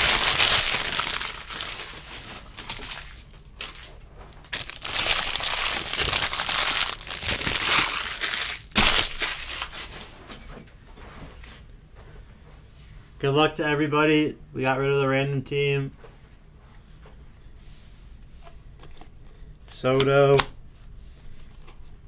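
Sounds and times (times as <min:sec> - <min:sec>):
plastic wrapping crinkling: 0:00.0 - 0:10.2.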